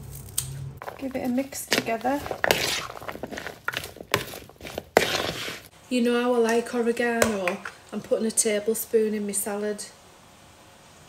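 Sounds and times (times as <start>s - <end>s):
wet vegetables scraping rustle: 0.8s - 5.7s.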